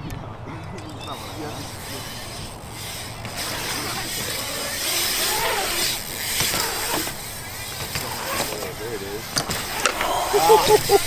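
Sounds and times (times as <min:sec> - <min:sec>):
bike tyres rolling on concrete: 0:00.0 - 0:11.0
faint voices: 0:00.0 - 0:11.0
bike knocking against coping: 0:00.7 - 0:11.0.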